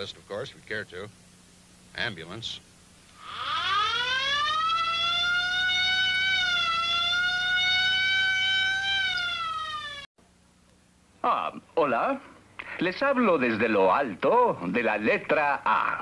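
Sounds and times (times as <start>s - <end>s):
cartoon ambulance siren wail: 3.2s - 10.1s.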